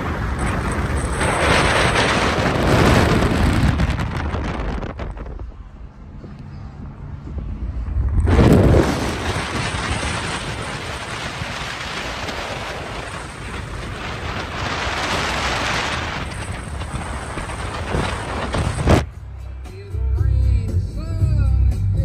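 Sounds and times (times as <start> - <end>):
wind buffeting microphone: 0.0 - 19.1
road and tyre rush: 0.0 - 22.0.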